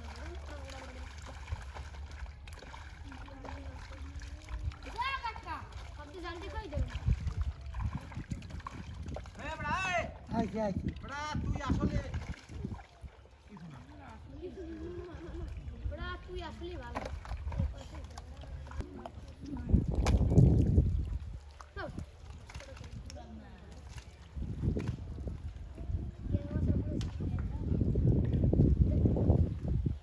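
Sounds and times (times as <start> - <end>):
wind rumble on microphone: 3.5 - 13.2, 14.3 - 30.0.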